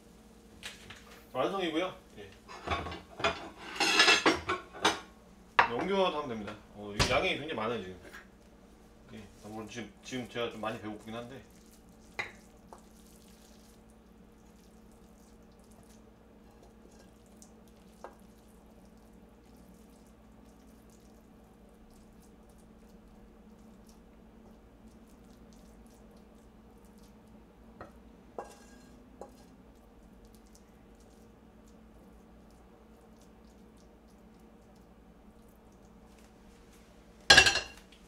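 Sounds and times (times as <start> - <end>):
faint steady hum: 0.0 - 38.0
wooden spatula scraping metal pan: 28.4 - 29.0.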